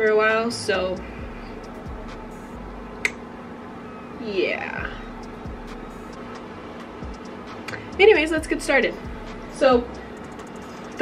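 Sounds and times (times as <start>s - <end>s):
space heater whirring: 0.0s - 11.0s.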